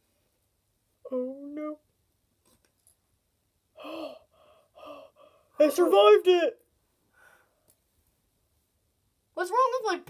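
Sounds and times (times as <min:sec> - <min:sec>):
person gasping: 0:03.8 - 0:05.6.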